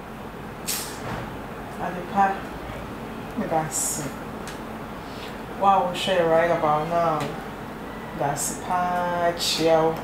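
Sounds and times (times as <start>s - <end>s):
short hiss: 0.6s - 1.0s.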